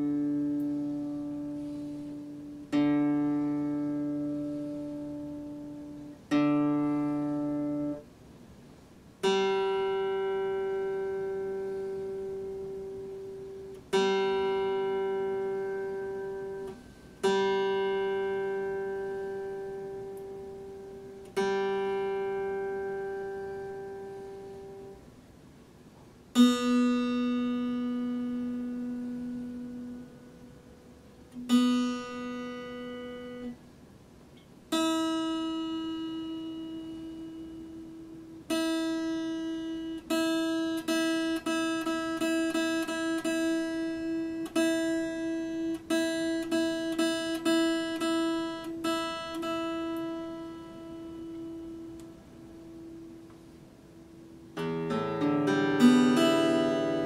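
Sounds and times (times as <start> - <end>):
acoustic guitar strings plucked: 0.0 - 8.1, 9.2 - 25.1, 26.3 - 33.6, 34.3 - 57.0.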